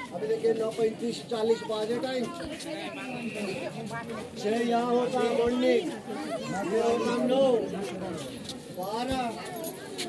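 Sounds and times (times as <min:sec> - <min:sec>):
people chatting in a crowd: 0:00.0 - 0:10.0.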